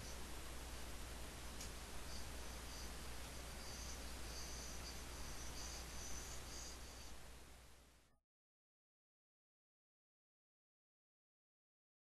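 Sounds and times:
faint hiss: 0.0s - 8.1s
low mains hum: 0.0s - 8.2s.

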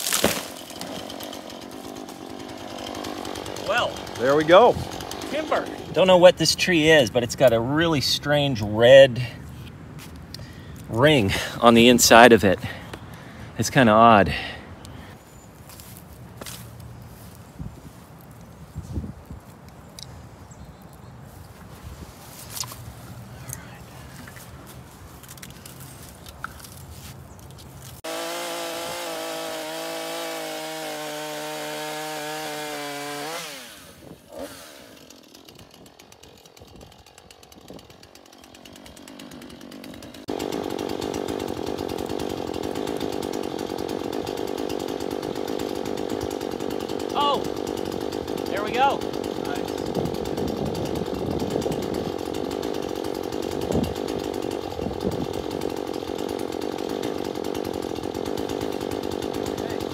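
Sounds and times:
chainsaw cutting tree limb: 0.0s - 9.0s, 22.0s - 59.9s.

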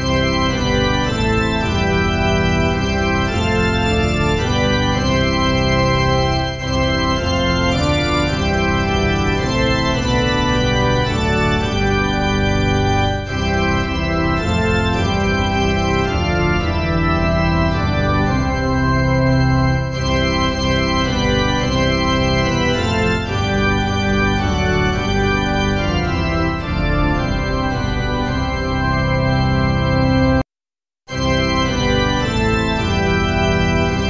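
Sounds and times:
organ playing a hymn: 0.0s - 30.4s, 31.1s - 34.0s.

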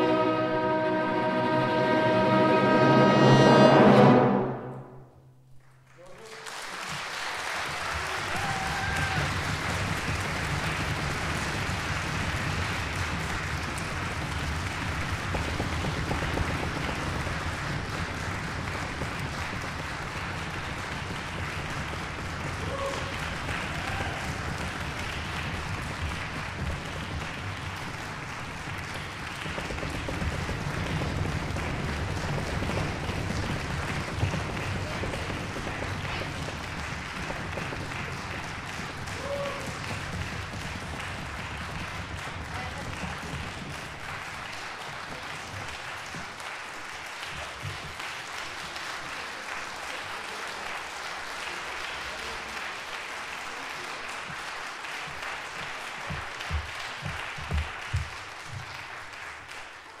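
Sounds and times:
audience applauding: 0.0s - 4.6s, 5.5s - 60.0s.

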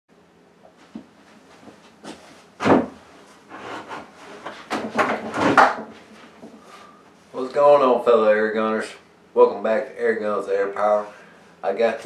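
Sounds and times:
knocks bumps and rustles: 0.9s - 3.1s, 3.8s - 6.6s.

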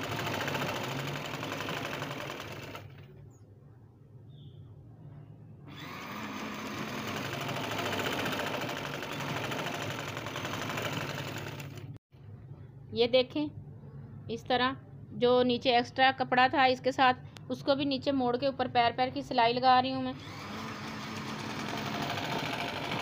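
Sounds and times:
sewing machine stitching: 0.0s - 3.2s, 5.7s - 12.0s, 20.2s - 23.0s.

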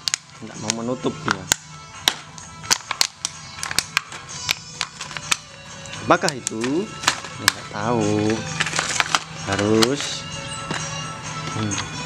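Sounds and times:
plastic packaging crackling: 0.0s - 11.8s
background music: 0.0s - 12.0s.

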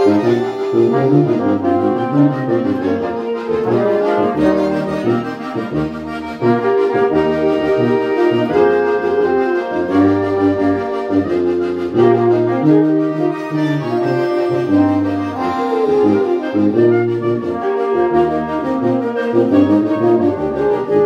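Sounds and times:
brass and accordion ensemble hymn: 0.0s - 21.0s.

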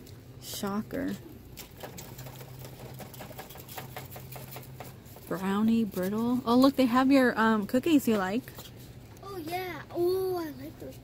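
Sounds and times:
small irregular clicks and rattles: 0.0s - 5.3s.

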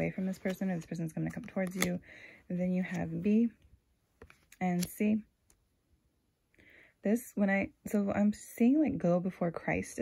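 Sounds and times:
woman speaking: 0.0s - 3.6s, 4.6s - 5.3s, 7.0s - 10.0s
cards clicking: 0.4s - 2.0s, 4.2s - 5.0s.

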